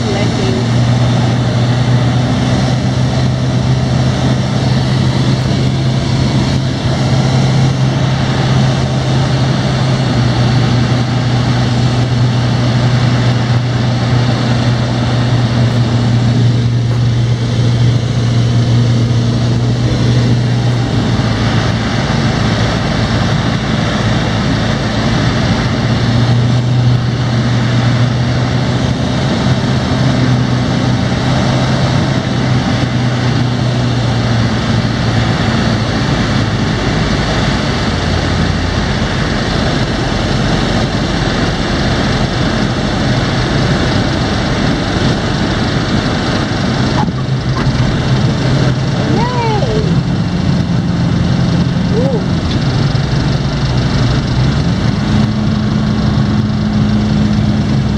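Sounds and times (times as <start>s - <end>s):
aircraft engine and propeller hum: 0.0s - 57.9s
rushing air noise: 0.0s - 57.9s.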